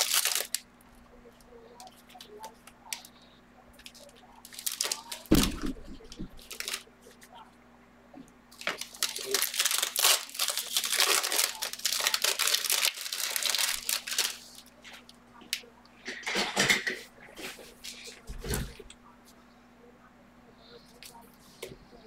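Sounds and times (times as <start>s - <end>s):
foil wrappers tearing and crinkling: 0.0s - 0.6s, 3.8s - 5.7s, 6.3s - 6.9s, 8.6s - 14.7s.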